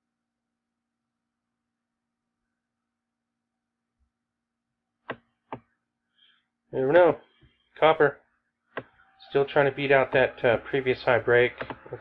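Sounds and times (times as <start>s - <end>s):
computer mouse clicks: 11.6s - 12.0s.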